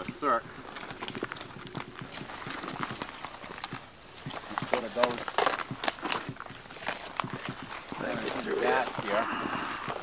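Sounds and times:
branches rustling: 0:00.0 - 0:10.0
footsteps on rocky trail: 0:00.0 - 0:10.0.

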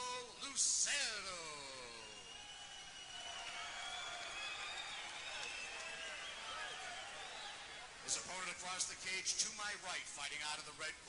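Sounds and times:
ring announcer calling out: 0:00.0 - 0:02.2
arena crowd noise: 0:00.0 - 0:11.0.

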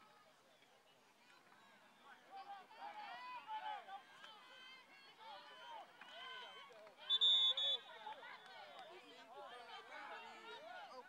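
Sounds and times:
referee's whistle blast: 0:07.1 - 0:07.8.

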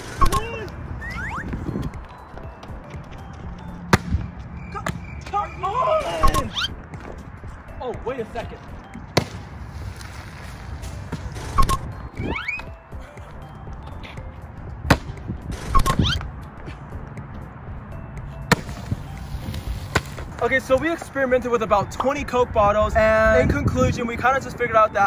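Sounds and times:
background music: 0:00.0 - 0:25.0.

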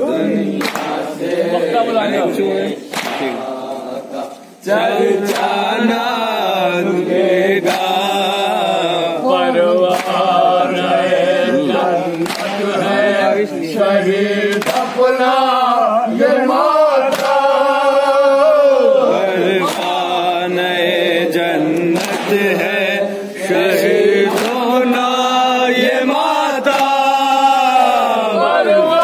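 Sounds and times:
men chanting in unison: 0:00.0 - 0:29.0
chest-beating slaps: 0:00.6 - 0:01.1, 0:02.9 - 0:03.4, 0:09.9 - 0:10.2, 0:12.1 - 0:12.7, 0:14.5 - 0:15.1, 0:17.0 - 0:17.4, 0:19.6 - 0:20.0, 0:21.8 - 0:22.5, 0:24.3 - 0:24.7.

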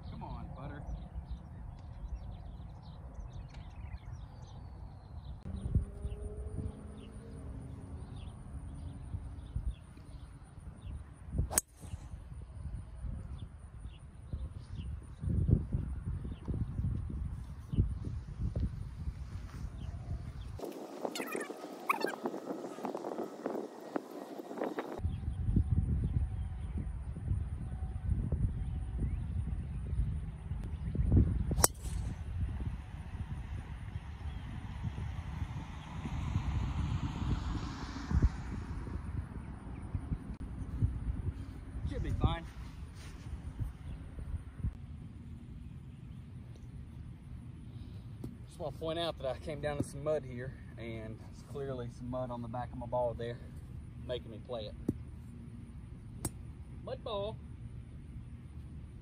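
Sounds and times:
wind rumbling on microphone: 0:00.0 - 0:56.0
golf club striking ball: 0:11.5 - 0:12.0, 0:31.6 - 0:32.2
faint bird calls: 0:19.8 - 0:25.0.

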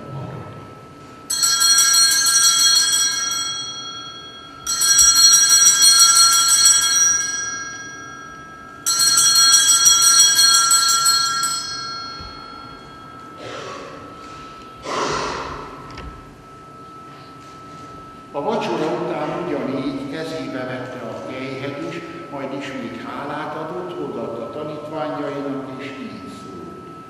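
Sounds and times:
small handbells jangling: 0:08.8 - 0:13.1.

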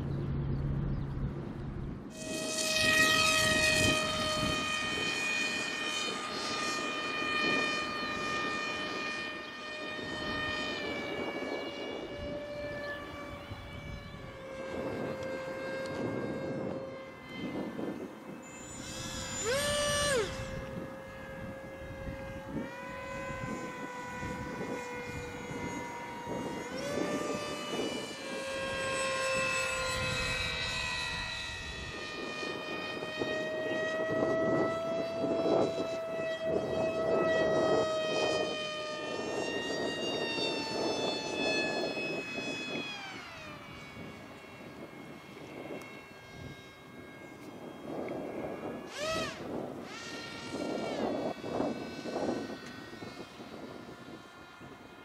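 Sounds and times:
model airplane motors whining: 0:00.0 - 0:55.0.

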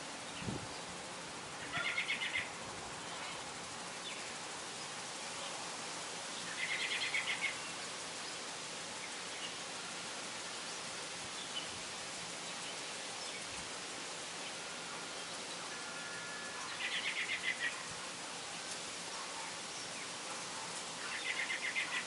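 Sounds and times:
steady outdoor hiss: 0:00.0 - 0:22.0.

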